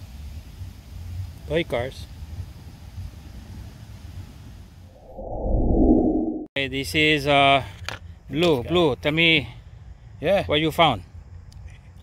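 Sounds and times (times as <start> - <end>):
low wind rumble on microphone: 2.2 - 6.5
muffled whoosh transition effect: 5.0 - 6.5.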